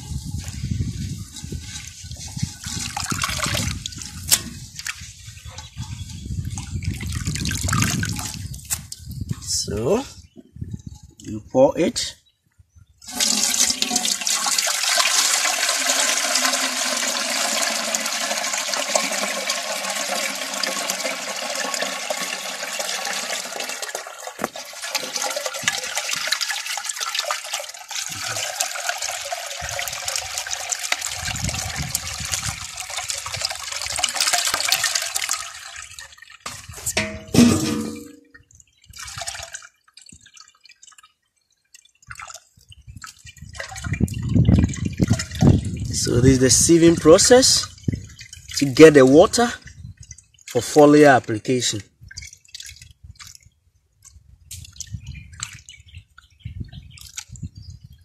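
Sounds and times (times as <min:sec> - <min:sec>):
liquid pouring into bucket: 0:00.4 - 0:05.8, 0:06.4 - 0:09.0, 0:13.0 - 0:41.1, 0:42.0 - 0:53.5
liquid dripping: 0:52.0 - 0:56.3.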